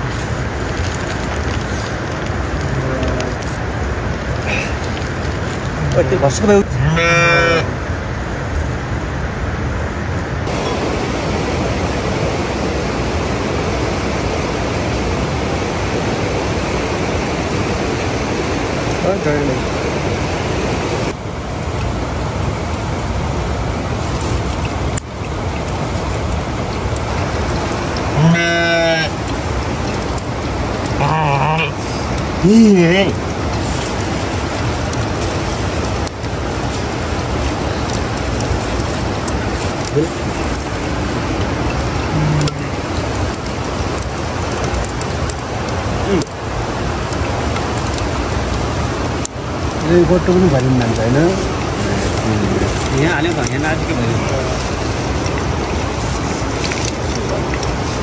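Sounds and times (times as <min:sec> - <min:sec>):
steady rushing outdoor noise: 0:00.0 - 0:58.0
short pitched voice-like calls: 0:28.1 - 0:29.2, 0:31.0 - 0:31.8, 0:42.0 - 0:42.8.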